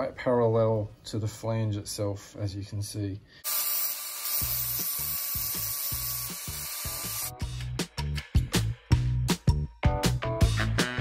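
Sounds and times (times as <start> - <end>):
angle grinder cutting metal: 3.4 - 7.3
background music with beat: 4.8 - 11.0.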